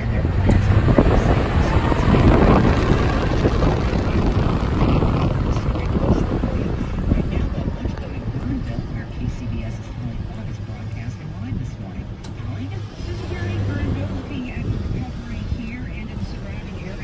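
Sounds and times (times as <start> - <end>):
muffled radio news talk: 0.0 - 17.0
vehicle hum: 0.0 - 17.0.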